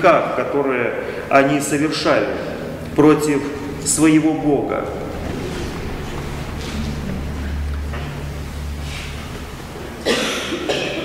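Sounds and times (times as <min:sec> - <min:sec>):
steady low hum: 0:00.0 - 0:11.0
person coughing: 0:10.0 - 0:11.0.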